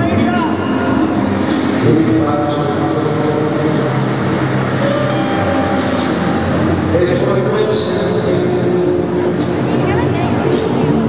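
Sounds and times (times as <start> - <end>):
ballroom dance music over loudspeakers: 0.0 - 11.0
murmur of spectators: 0.0 - 11.0.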